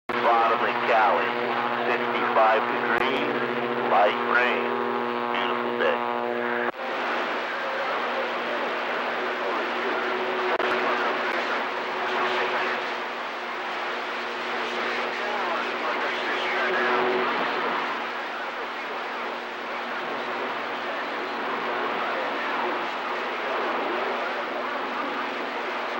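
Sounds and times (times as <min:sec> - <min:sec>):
radio static hiss: 0:00.1 - 0:25.9.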